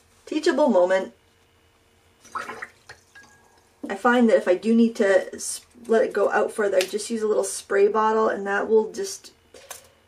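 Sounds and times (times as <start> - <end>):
brush splashing in water jar: 2.2 - 3.4.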